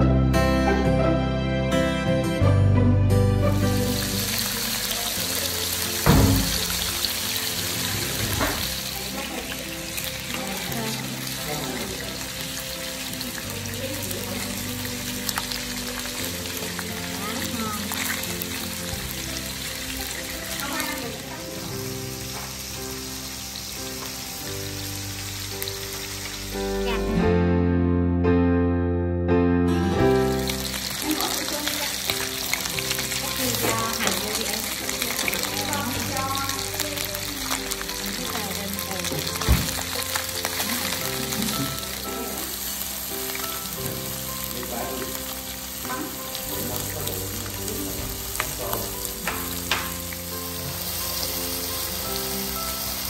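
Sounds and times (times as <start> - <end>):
background music: 0.0 - 53.0
fish sizzling in oil: 3.4 - 27.2, 29.7 - 53.0.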